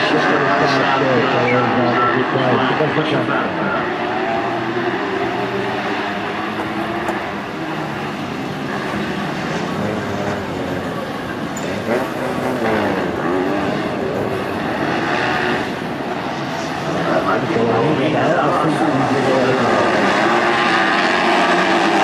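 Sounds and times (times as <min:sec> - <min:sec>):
racing buggy engines revving: 0:00.0 - 0:22.0.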